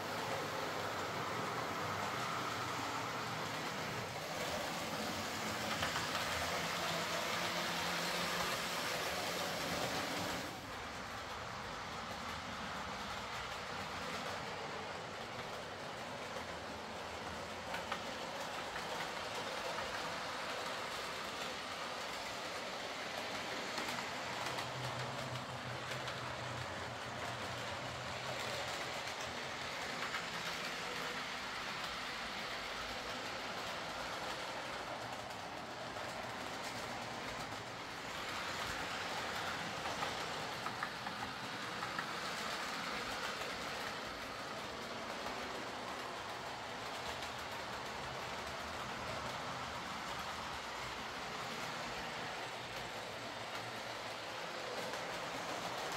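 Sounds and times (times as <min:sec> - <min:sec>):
model train motor whirr: 0:00.0 - 0:11.0
wheels clicking over rail joints: 0:00.0 - 0:55.9.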